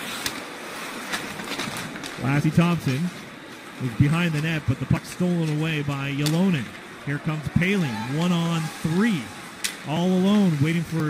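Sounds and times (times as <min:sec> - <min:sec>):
skates scraping on ice: 0:00.0 - 0:11.0.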